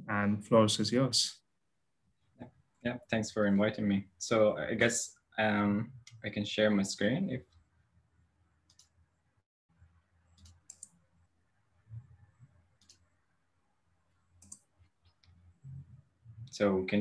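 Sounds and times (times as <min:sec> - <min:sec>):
computer mouse clicks: 0:08.7 - 0:09.0, 0:10.3 - 0:11.0, 0:12.8 - 0:13.1, 0:14.3 - 0:15.8.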